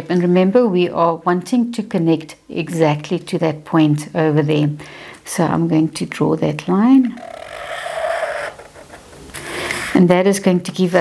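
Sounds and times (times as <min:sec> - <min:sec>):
marker pen squeaking on paper: 0:07.1 - 0:10.0.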